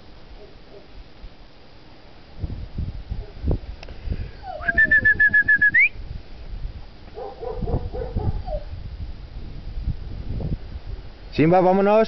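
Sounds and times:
lower patterned call: 0:04.4 - 0:06.0
short high whistled notes: 0:04.6 - 0:06.0.

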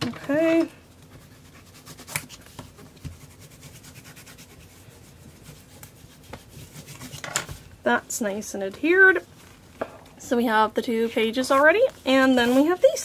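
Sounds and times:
bone folder scraping paper: 0:11.4 - 0:13.0.

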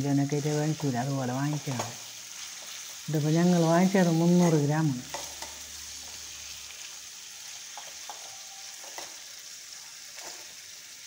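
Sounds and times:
fish sizzling in hot oil: 0:00.0 - 0:11.0
spatula tapping and scraping: 0:04.4 - 0:06.2, 0:07.7 - 0:09.2.

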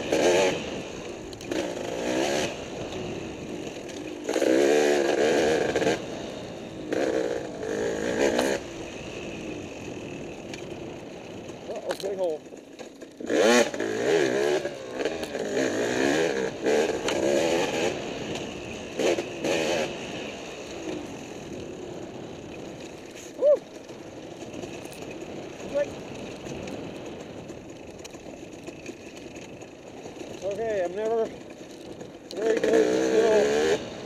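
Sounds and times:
dirt bike engine revving: 0:00.0 - 0:10.4, 0:11.0 - 0:22.2, 0:28.5 - 0:34.0.

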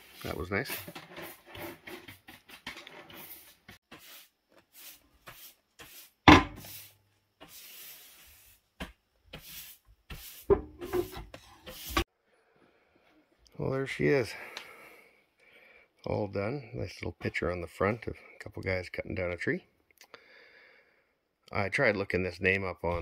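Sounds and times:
metal stove doors clicking and scraping: 0:10.5 - 0:11.5.

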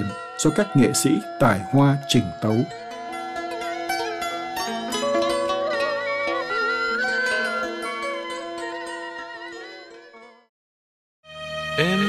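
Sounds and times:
plucked zither music: 0:00.0 - 0:10.5.

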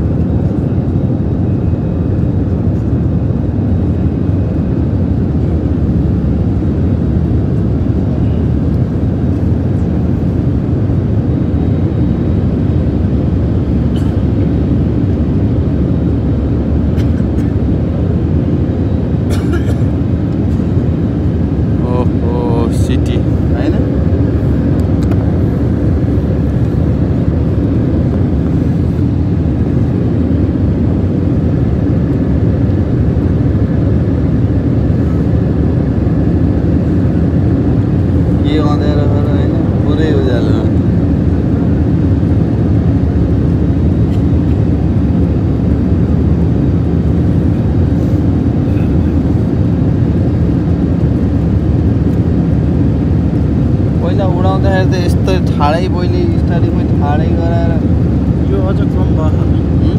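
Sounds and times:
jet engines and rushing air: 0:00.0 - 0:59.9.

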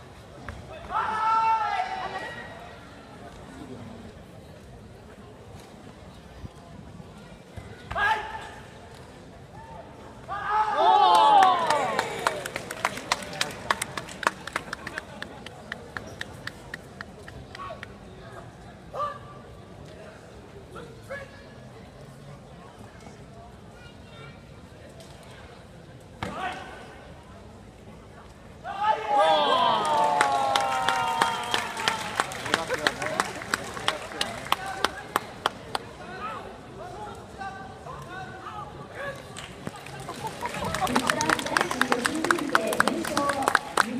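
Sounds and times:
sports hall background: 0:00.0 - 0:43.9
loud shout: 0:00.9 - 0:02.5, 0:10.3 - 0:12.4, 0:28.6 - 0:32.2.

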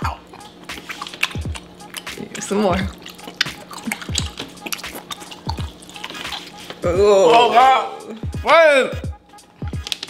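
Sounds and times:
wet chewing mouth sounds: 0:00.0 - 0:07.0, 0:09.4 - 0:10.0
slow beat background music: 0:00.0 - 0:10.0.

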